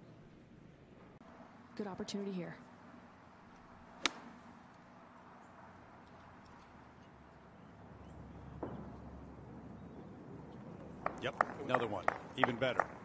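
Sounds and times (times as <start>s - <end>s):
faint outdoor ambience: 0.0s - 13.0s
golf club striking ball: 4.0s - 4.4s.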